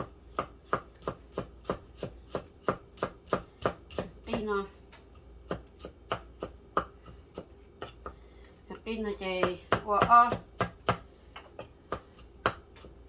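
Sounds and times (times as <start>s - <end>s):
knife chopping on wooden board: 0.0s - 4.6s, 5.4s - 8.2s, 9.3s - 13.0s.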